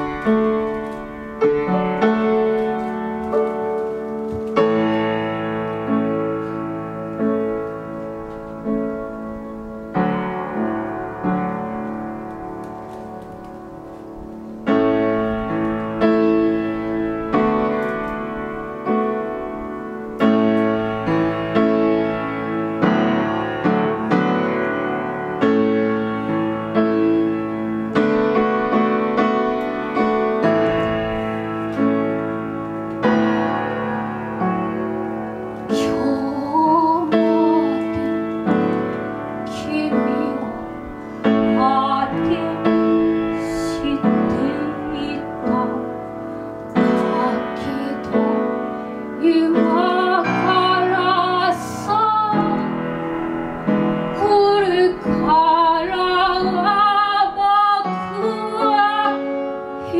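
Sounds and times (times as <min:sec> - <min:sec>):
piano playing slow chords: 0:00.0 - 0:59.9.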